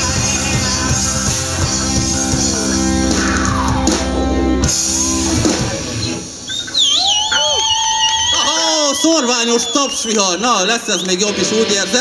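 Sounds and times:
rock band guitar chord ringing: 0.0s - 6.2s
high-pitched whistle: 6.0s - 11.2s.

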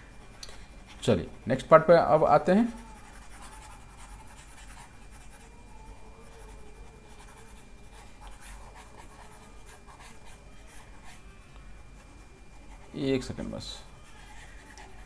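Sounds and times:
faint high whine: 0.0s - 15.0s.

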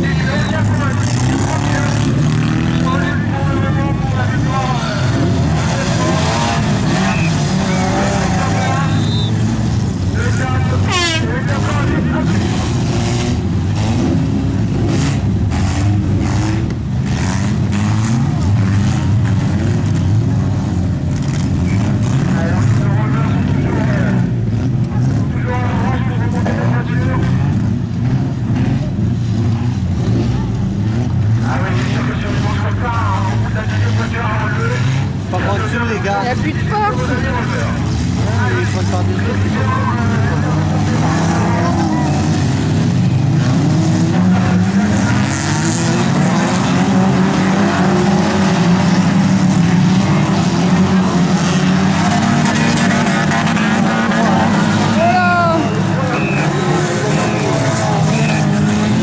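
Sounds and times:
crowd voices: 0.0s - 59.0s
stock car engines racing: 0.0s - 59.0s.

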